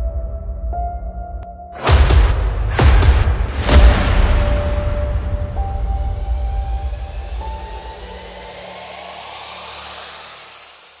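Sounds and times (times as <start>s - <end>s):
outro music bass and held tone: 0.0s - 11.0s
rising hissing noise: 5.6s - 11.0s.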